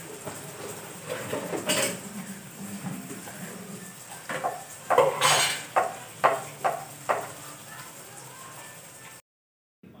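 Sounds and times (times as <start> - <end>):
metal pans clattering and scraping: 0.2 - 7.3.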